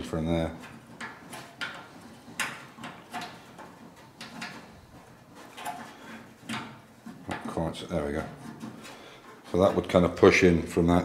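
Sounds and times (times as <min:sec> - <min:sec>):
light metallic clicks and knocks: 0:00.0 - 0:10.0.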